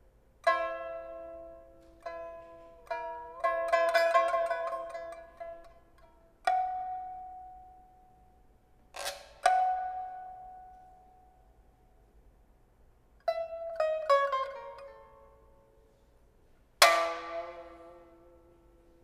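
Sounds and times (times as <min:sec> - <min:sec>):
pipa plucked notes: 0:00.0 - 0:11.4, 0:13.2 - 0:16.1, 0:16.8 - 0:19.0.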